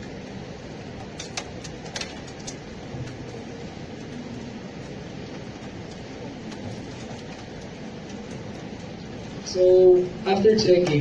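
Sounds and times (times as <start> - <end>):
background rumble and hiss: 0.0 - 11.0.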